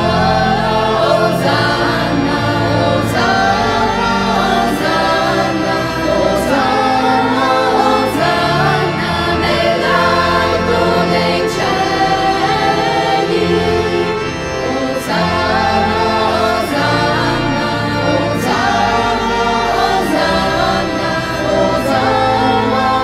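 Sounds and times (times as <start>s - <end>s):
choir singing a hymn: 0.0s - 23.0s
instrumental accompaniment: 0.0s - 23.0s.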